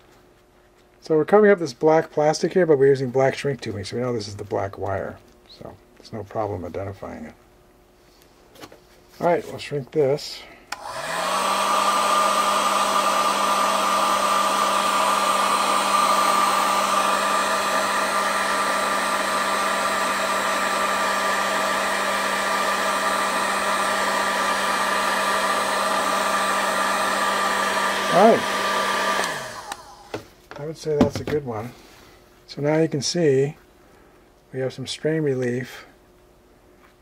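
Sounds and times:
heat gun fan whirring: 0:00.8 - 0:36.3.

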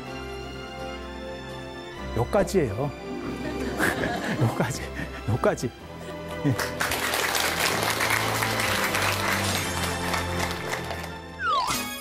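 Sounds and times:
audience applauding: 0:06.4 - 0:11.2.

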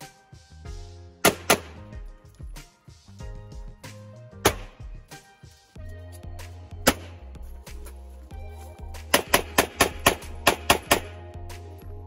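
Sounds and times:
rapid pistol shots: 0:01.2 - 0:01.8, 0:04.4 - 0:04.8, 0:09.1 - 0:11.2.

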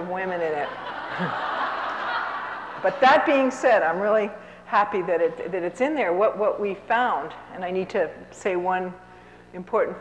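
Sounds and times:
audience laughing: 0:00.4 - 0:03.0.

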